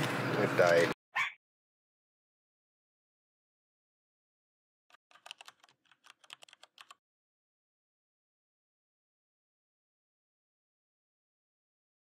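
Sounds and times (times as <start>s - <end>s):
typing on a keyboard: 4.9s - 7.0s.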